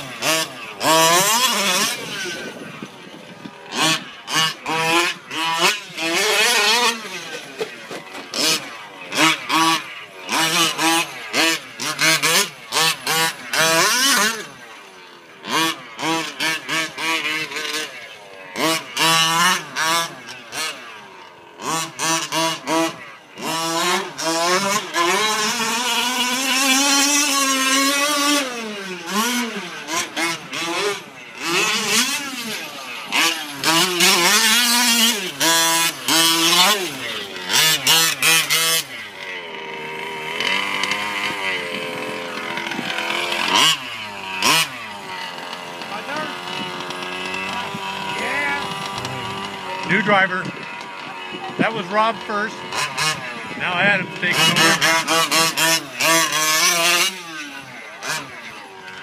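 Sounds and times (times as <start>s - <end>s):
small two-stroke engine revving: 0.0s - 59.0s.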